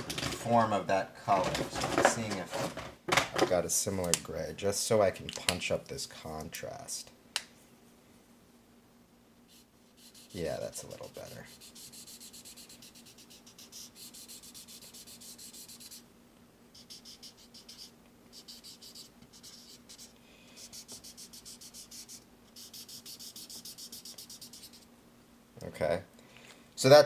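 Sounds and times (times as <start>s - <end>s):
marker scribbling on paper: 9.5s - 16.0s, 16.8s - 24.9s.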